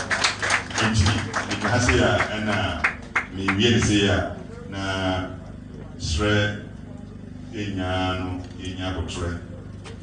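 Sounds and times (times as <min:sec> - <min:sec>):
man's voice through microphone: 0:00.8 - 0:06.9, 0:07.5 - 0:09.6.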